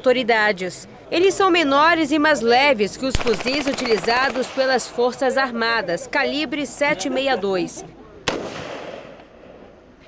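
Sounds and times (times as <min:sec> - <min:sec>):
rifle shot with echo: 0:03.1 - 0:05.0, 0:08.3 - 0:09.6.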